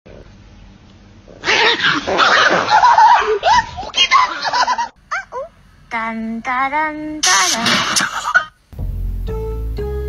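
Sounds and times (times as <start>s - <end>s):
dog vocal outburst: 1.3s - 4.5s.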